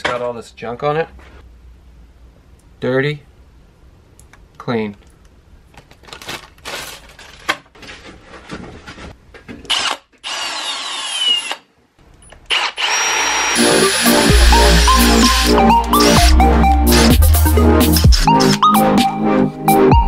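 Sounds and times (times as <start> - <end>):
cordless drill drilling into wood: 9.7 - 11.6, 12.5 - 16.4
electronic music with beat and bass: 13.6 - 20.0.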